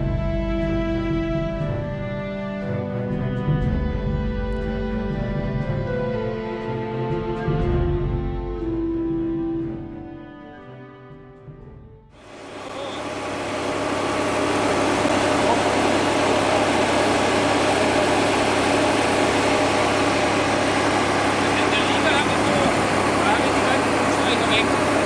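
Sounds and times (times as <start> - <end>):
brief music: 0.0 - 25.0
pneumatic seed drill running: 12.2 - 25.0
tractor engine: 12.2 - 25.0.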